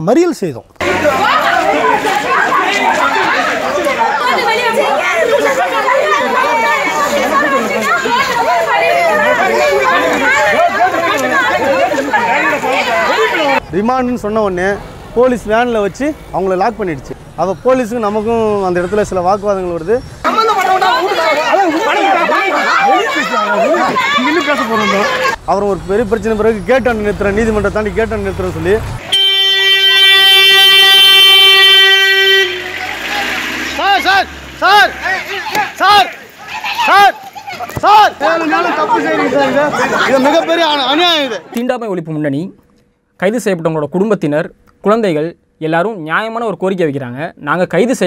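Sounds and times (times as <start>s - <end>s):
crowd shouting and wailing: 0.8s - 13.7s, 20.2s - 27.0s, 29.0s - 41.6s
man speaking: 22.9s - 29.0s
vehicle horn blast: 29.0s - 33.8s.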